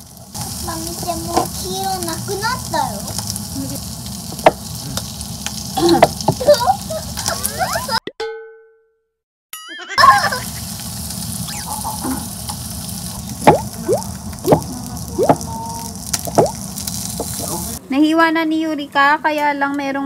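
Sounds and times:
bacon sizzling: 0.0 - 8.0, 10.0 - 17.8
sharp pops: 13.4 - 15.5, 16.1 - 17.4.

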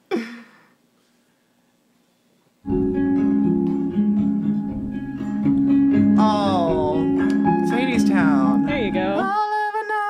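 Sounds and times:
guitar sustained chords: 2.7 - 9.2.

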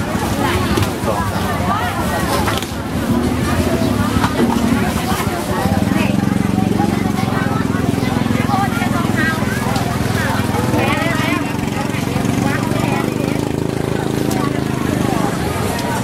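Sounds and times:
people talking: 0.0 - 16.0.

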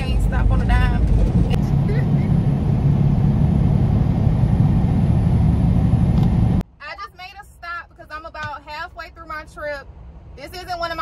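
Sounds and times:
woman talking: 0.0 - 1.1, 6.8 - 11.0
truck engine rumble: 0.0 - 6.8.

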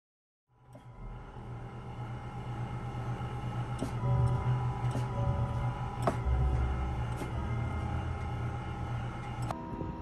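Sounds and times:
low electric hum: 0.5 - 10.0.

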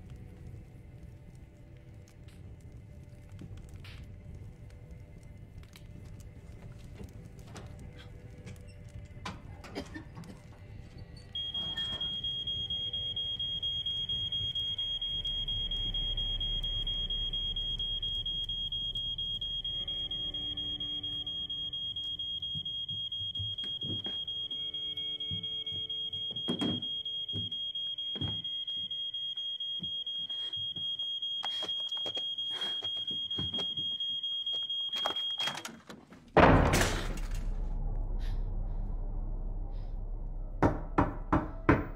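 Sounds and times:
smoke alarm high-pitched tone: 11.4 - 35.7.

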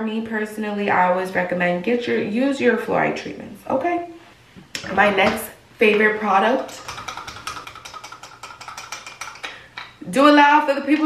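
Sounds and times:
rapid even ticking: 6.6 - 9.7.

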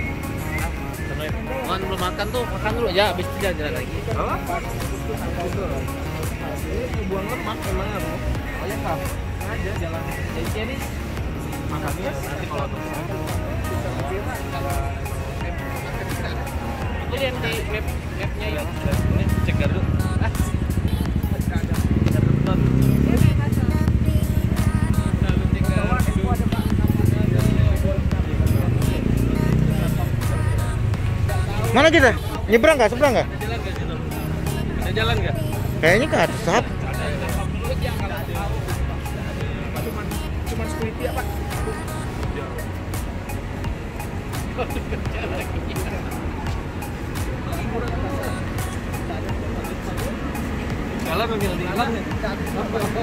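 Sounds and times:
music: 0.0 - 53.0
traffic rumble: 0.0 - 53.0
vehicle engines running: 0.0 - 53.0
voices: 0.0 - 53.0.

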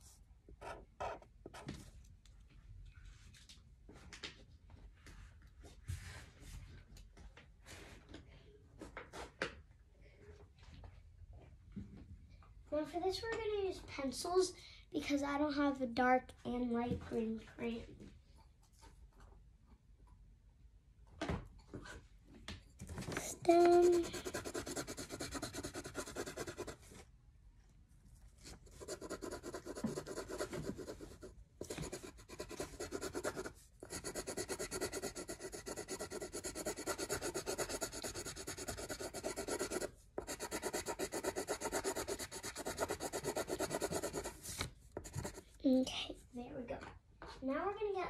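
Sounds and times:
pencil scribbling on paper: 0.6 - 1.3, 23.2 - 26.8, 28.5 - 45.5.

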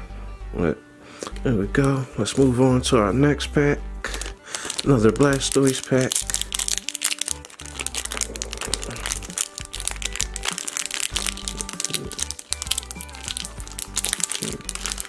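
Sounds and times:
background music: 0.0 - 15.0
foil wrapper crinkling: 4.1 - 15.0.

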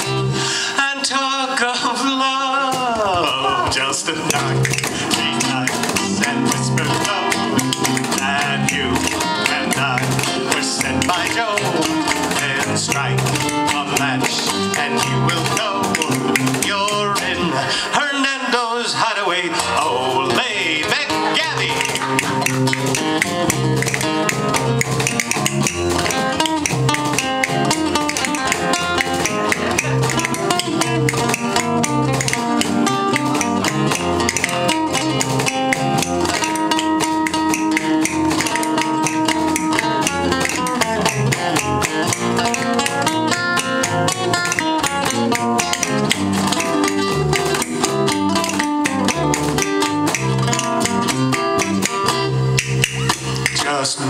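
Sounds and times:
guitars playing tango rhythm: 0.0 - 54.0.

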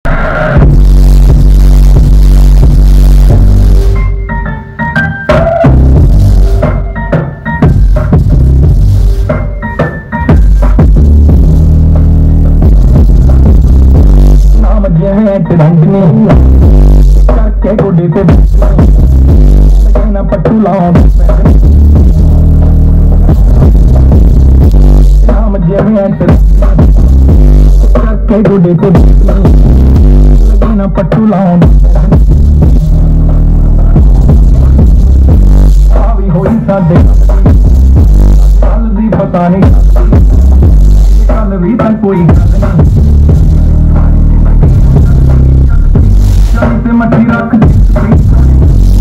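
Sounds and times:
bass-heavy electronic music: 0.0 - 49.0.

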